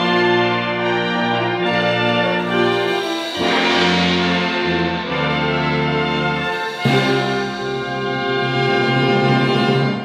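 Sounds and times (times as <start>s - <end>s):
wind band playing: 0.0s - 10.0s.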